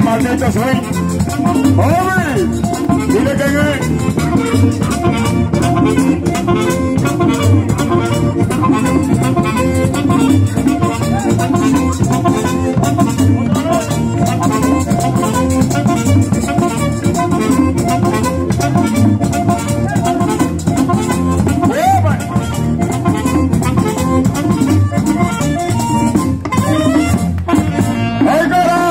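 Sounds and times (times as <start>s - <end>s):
tambora drum: 0.0s - 28.3s
button accordion: 0.0s - 28.9s
saxophone: 0.0s - 28.9s.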